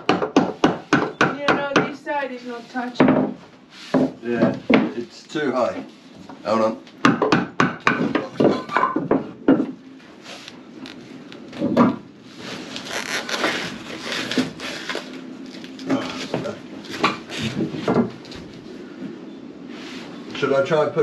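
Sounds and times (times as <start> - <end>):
wooden knocks: 3.0 - 3.4, 4.0 - 5.0, 7.0 - 9.8, 11.6 - 12.0
plywood scraping and rubbing: 10.0 - 18.7.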